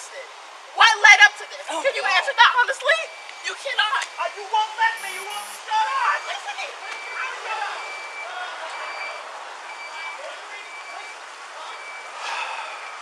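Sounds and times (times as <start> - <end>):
outdoor traffic noise: 0.0 - 13.0.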